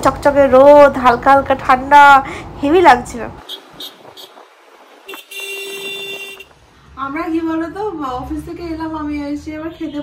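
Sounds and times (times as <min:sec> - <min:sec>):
faint city traffic: 0:00.0 - 0:10.0
vehicle horn honk: 0:03.5 - 0:04.4, 0:05.0 - 0:06.5.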